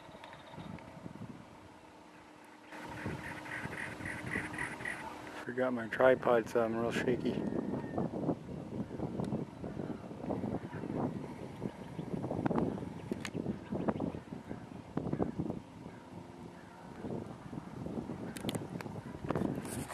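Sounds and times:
wind on microphone: 0.0 - 1.8, 2.7 - 19.9
camera handling noise: 13.1 - 13.4, 18.4 - 18.6.

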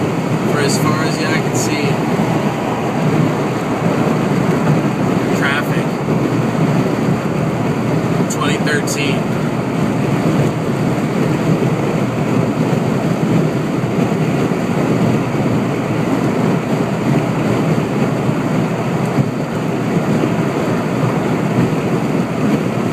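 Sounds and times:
wind and road noise: 0.0 - 22.9
wind buffeting microphone: 0.0 - 22.9.

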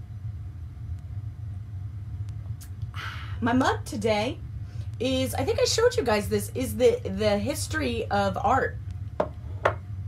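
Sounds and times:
room background hum: 0.0 - 10.0.

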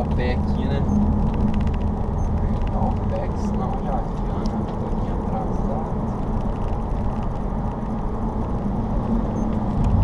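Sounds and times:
car engine hum: 0.0 - 10.0
tyre and road noise: 0.0 - 10.0.

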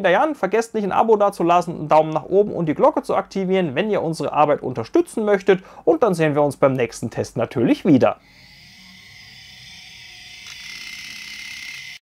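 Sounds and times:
steady high tone: 8.2 - 12.0
synthesized rising hiss swell: 8.2 - 12.0.

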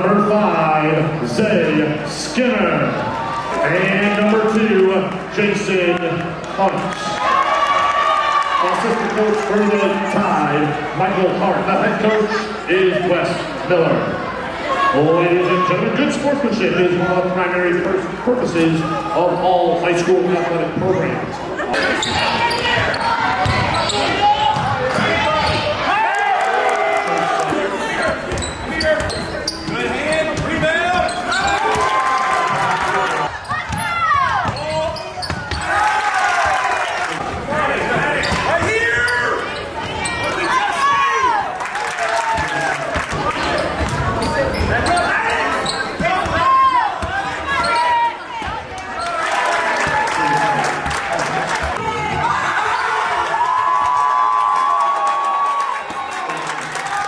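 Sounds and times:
basketball bouncing on hardwood floor: 23.4 - 23.7.

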